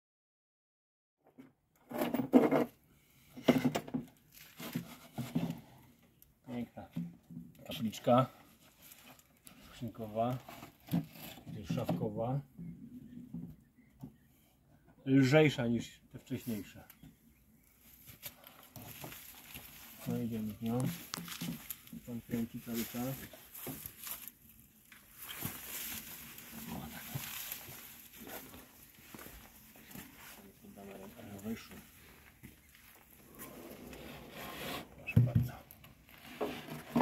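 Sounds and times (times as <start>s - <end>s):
man talking: 6.5s - 7.0s, 7.6s - 8.4s, 9.7s - 10.4s, 11.5s - 12.5s, 15.0s - 16.9s, 20.0s - 21.1s, 21.9s - 23.3s, 30.3s - 31.9s, 35.0s - 35.7s.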